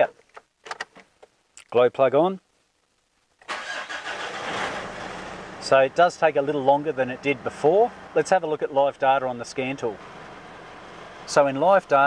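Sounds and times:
diesel engine starting and idling: 0:03.5 - 0:12.0.

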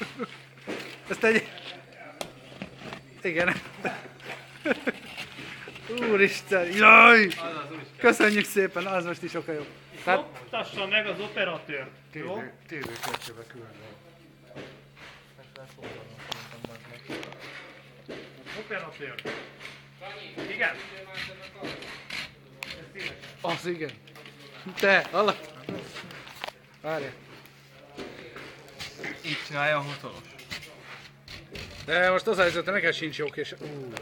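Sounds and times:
steady low hum: 0:00.0 - 0:34.0
indistinct talking voices: 0:00.8 - 0:12.9.

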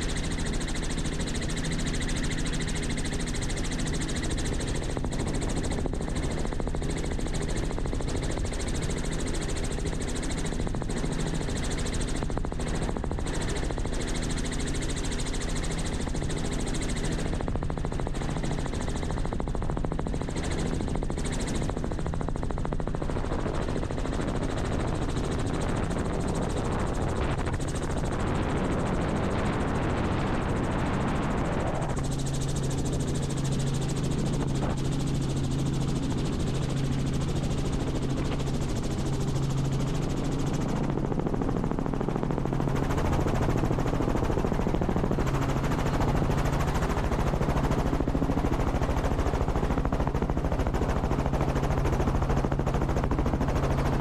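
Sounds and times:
helicopter rotor and engine drone: 0:00.0 - 0:54.0.

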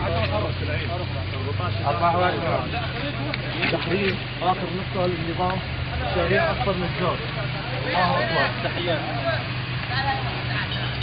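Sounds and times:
men talking: 0:00.0 - 0:09.8
vehicle engine idling: 0:00.0 - 0:11.0.

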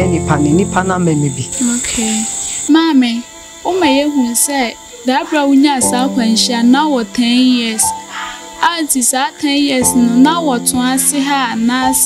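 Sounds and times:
person speaking: 0:00.0 - 0:02.4
insect trill: 0:00.0 - 0:12.0.

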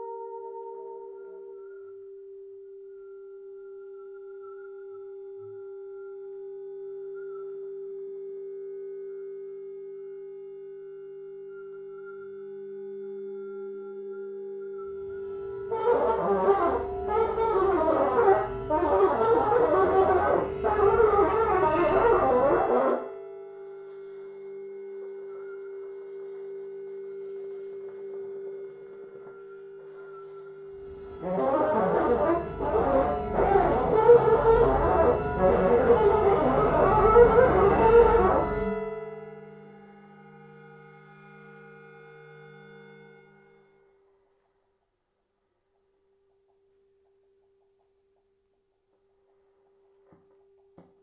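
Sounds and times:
lower electronic tone: 0:10.4 - 0:40.8
steady electronic drone: 0:15.0 - 0:23.2, 0:27.2 - 0:41.6.

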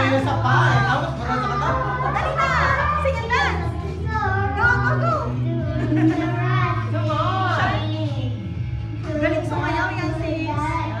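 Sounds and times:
karaoke backing track with bass: 0:00.0 - 0:11.0.

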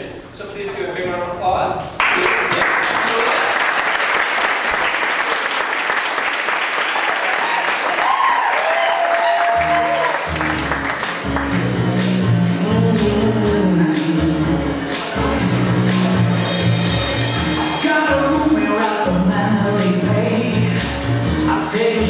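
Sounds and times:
audience applauding: 0:02.0 - 0:12.2
latin dance music with bass: 0:09.6 - 0:22.0.

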